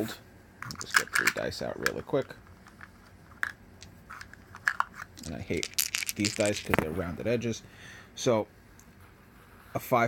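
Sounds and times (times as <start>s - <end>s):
dice clicking together: 2.6s - 6.9s.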